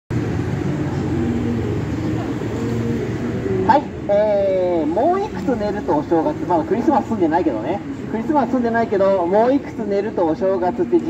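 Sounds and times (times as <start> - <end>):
low rumble of vehicles: 0.1 - 11.0.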